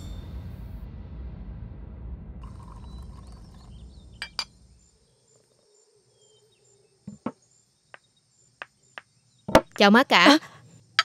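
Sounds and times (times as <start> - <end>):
porcelain tableware clinking: 4.2 - 4.5.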